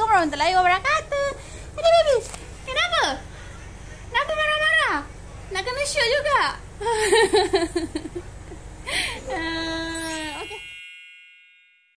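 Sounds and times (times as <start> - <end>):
room background: 0.0 - 12.0
bright chime: 9.7 - 12.0.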